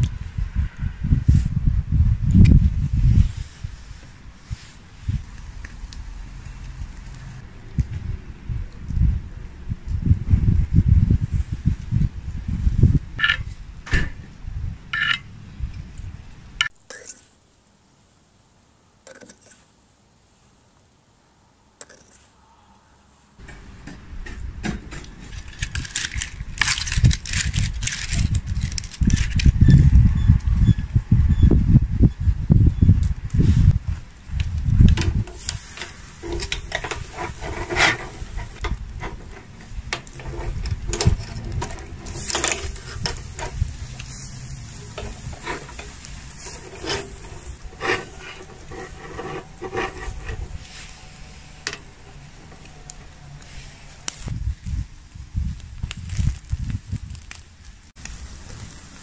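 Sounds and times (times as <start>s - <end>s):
low microphone rumble: 0.0s - 16.6s.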